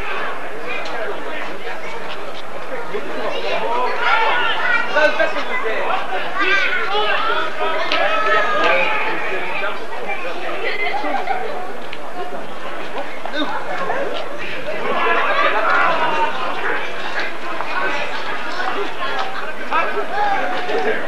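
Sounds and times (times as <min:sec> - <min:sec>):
indistinct chatter of voices: 0:00.0 - 0:21.0.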